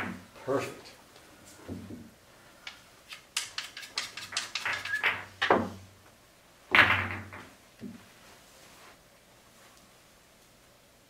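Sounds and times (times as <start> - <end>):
pool balls clicking: 0.0 - 0.3, 1.8 - 5.9, 6.7 - 8.0
pool balls knocking: 6.7 - 8.0.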